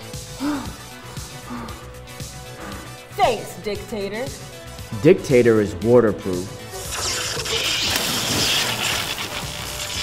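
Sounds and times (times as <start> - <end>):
background music: 0.0 - 10.0
splash into pool: 6.8 - 10.0
water churning: 6.8 - 10.0.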